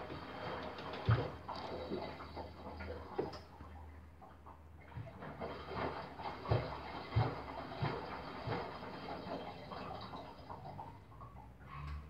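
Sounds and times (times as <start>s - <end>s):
washing machine sloshing: 0.0s - 12.0s.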